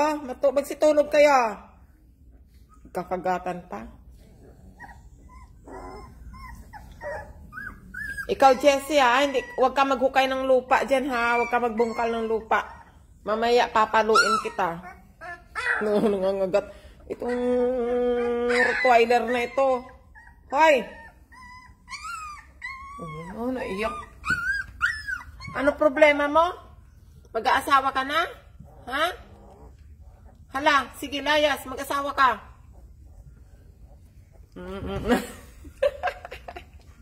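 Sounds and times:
puppies whimpering: 0:04.6 - 0:16.2, 0:17.0 - 0:26.0.

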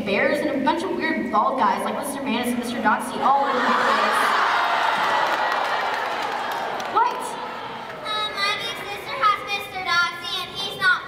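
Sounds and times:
children talking: 0:07.0 - 0:11.0.

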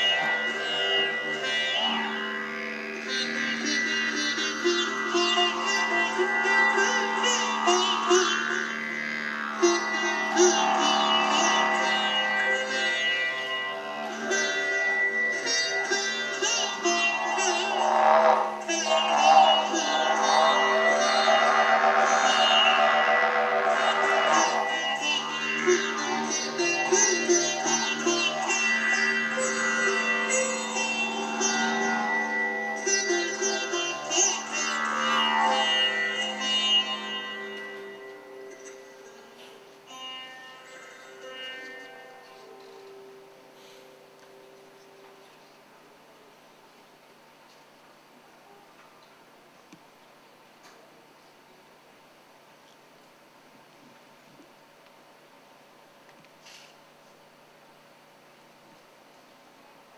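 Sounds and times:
sitar plucked melody: 0:00.0 - 0:46.2
wind instrument drone: 0:00.0 - 0:46.6.

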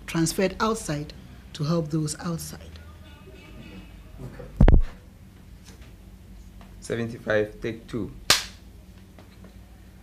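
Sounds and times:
clapperboard clap: 0:08.3 - 0:08.6.

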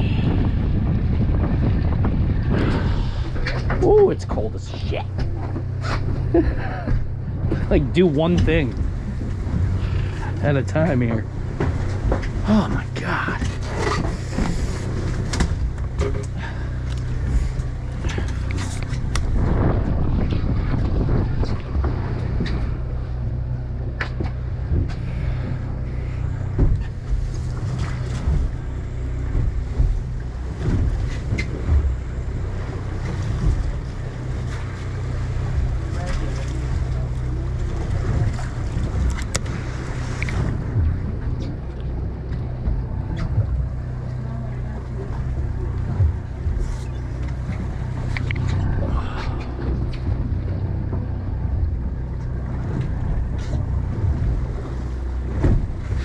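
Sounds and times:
boat engine humming: 0:00.0 - 0:56.0
wind buffeting microphone: 0:00.0 - 0:56.0.

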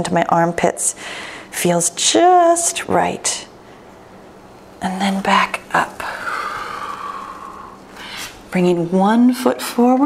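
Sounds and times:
person breathing out: 0:06.1 - 0:08.4.

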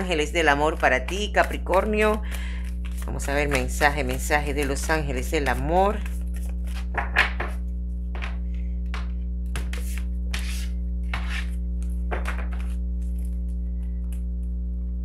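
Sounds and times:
cards being shuffled: 0:00.0 - 0:14.2.

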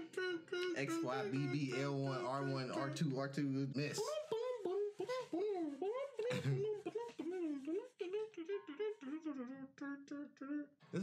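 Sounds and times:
person humming a tune: 0:00.0 - 0:03.3, 0:03.9 - 0:11.0.

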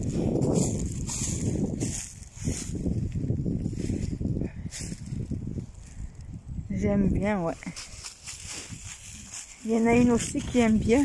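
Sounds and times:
footsteps crunching dry leaves: 0:00.0 - 0:05.9, 0:07.6 - 0:11.0.

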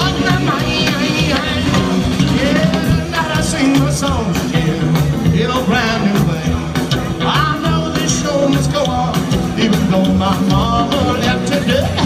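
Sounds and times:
live rockabilly band playing: 0:00.0 - 0:12.0.

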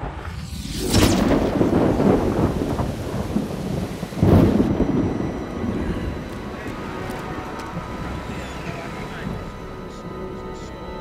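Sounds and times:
thunderclap rumbling: 0:00.0 - 0:09.9
steady rain hissing: 0:00.0 - 0:11.0.

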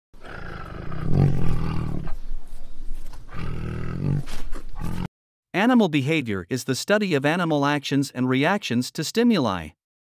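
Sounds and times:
tiger roaring: 0:00.2 - 0:02.2, 0:03.3 - 0:05.1.

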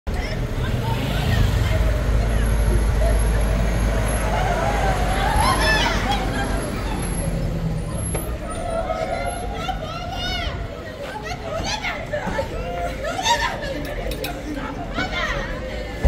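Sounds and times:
crowd talking: 0:00.1 - 0:16.0.

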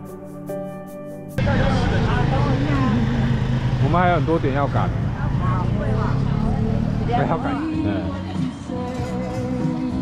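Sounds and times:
scooter engine idling: 0:01.4 - 0:07.7
people talking: 0:01.4 - 0:08.6.

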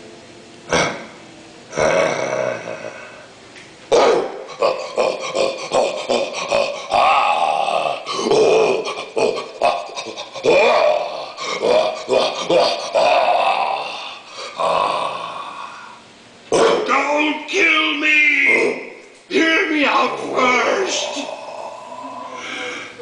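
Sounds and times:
animatronic yeti growling and grunting: 0:00.7 - 0:03.3, 0:03.9 - 0:17.0, 0:18.5 - 0:19.0, 0:20.0 - 0:22.9.

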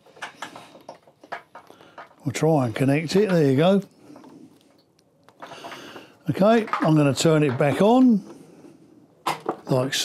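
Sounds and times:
cables rustling: 0:00.0 - 0:08.5.

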